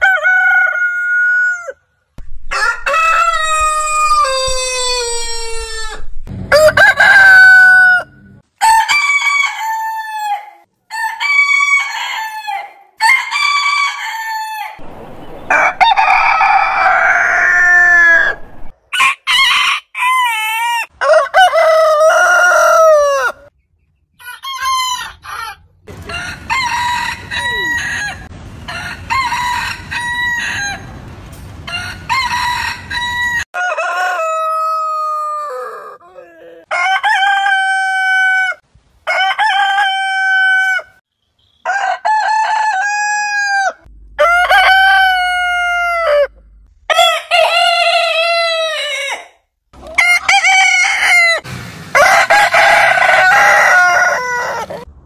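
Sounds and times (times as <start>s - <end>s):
roosters crowing: 0.0s - 1.8s, 2.4s - 23.5s, 24.2s - 41.0s, 41.6s - 54.9s.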